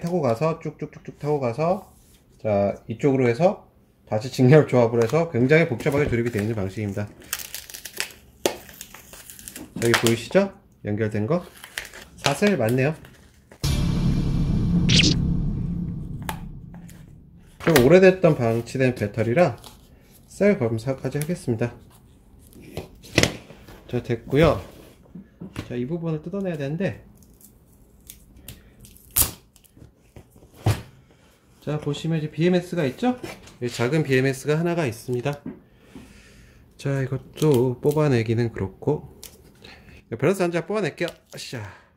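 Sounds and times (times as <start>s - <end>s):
plastic wrapper crinkling: 6.2s - 10.2s.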